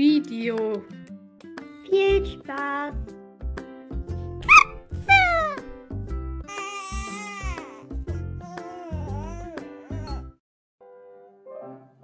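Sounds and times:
children's music with steady beat: 0.0s - 9.7s.

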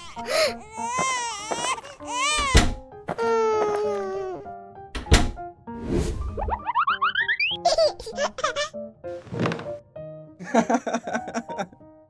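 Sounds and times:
children's background music: 0.0s - 11.6s
sharp thunk: 2.4s - 2.8s, 5.0s - 5.4s
swish: 5.8s - 6.4s.

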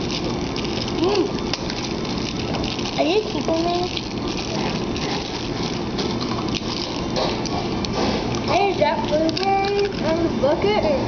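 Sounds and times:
cellophane wrapper crinkling: 0.0s - 10.4s.

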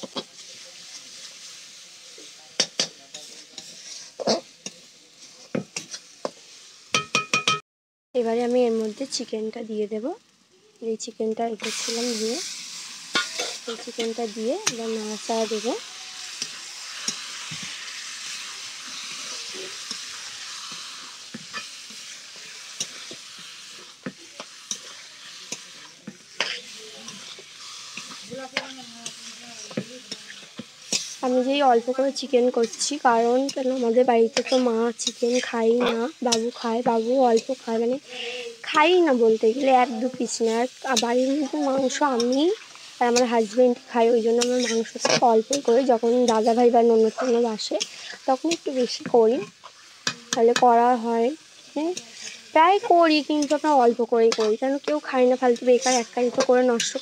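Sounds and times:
paste sizzling in hot oil: 0.0s - 7.6s, 8.2s - 57.0s
spatula scraping metal pan: 13.1s - 31.2s, 32.6s - 38.3s, 44.2s - 48.6s, 51.9s - 53.7s, 55.5s - 57.0s.

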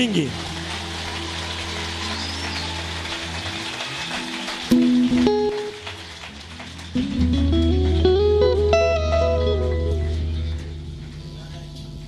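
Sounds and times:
congregation applauding: 0.0s - 8.6s
electric guitar plucking notes: 4.7s - 5.8s, 6.9s - 12.0s
sound system hum: 7.0s - 12.0s.

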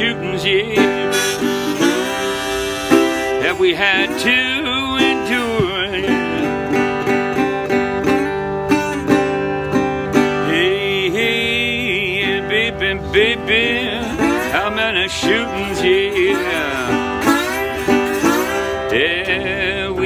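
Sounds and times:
harmonica wavering notes: 0.0s - 10.7s, 13.5s - 19.4s
slide guitar blues: 0.0s - 20.0s.

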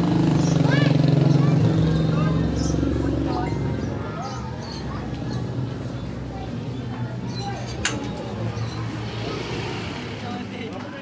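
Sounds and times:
vehicle engine running: 0.0s - 7.3s.

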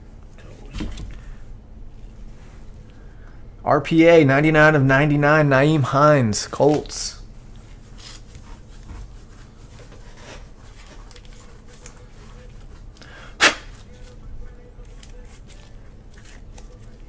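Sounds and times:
plastic rubbing and rustling: 6.7s - 17.0s.

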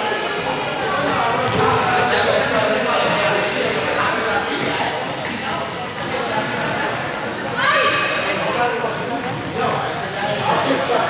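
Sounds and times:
students chattering in echoing hall: 0.0s - 11.0s.

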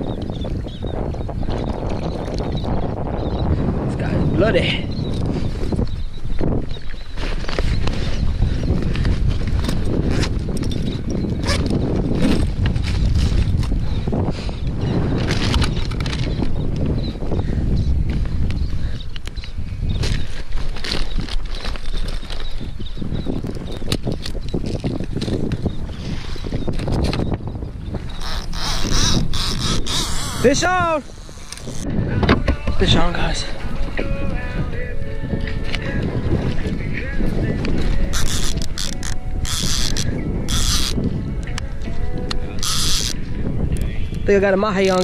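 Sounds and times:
wind: 0.0s - 45.0s.

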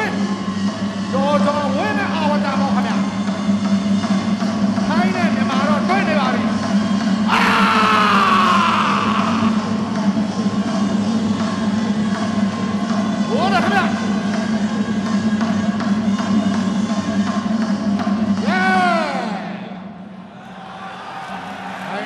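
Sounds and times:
crowd noise: 18.3s - 22.0s.

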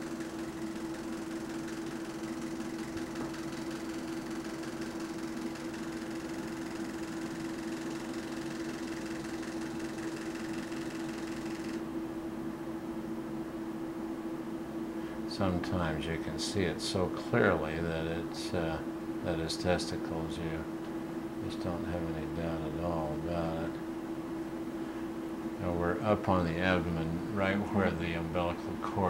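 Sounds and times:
electronic equipment hum: 0.0s - 29.0s.

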